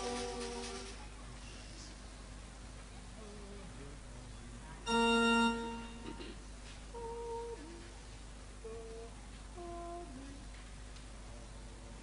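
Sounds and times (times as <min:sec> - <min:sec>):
person humming a hymn: 0:00.0 - 0:01.0, 0:04.9 - 0:08.0, 0:08.6 - 0:10.4.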